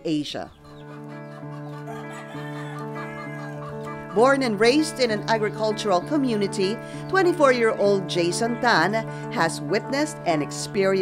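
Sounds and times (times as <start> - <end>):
chickens clucking: 0.4 - 7.3
soft music of held chords: 0.6 - 11.0.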